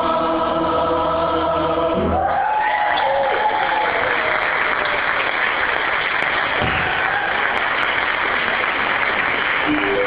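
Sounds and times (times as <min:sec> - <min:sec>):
audience applauding: 0:02.3 - 0:10.0.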